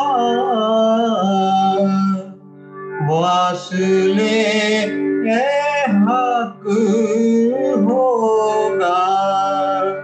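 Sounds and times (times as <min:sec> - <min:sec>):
man singing devotional melody: 0:00.0 - 0:10.0.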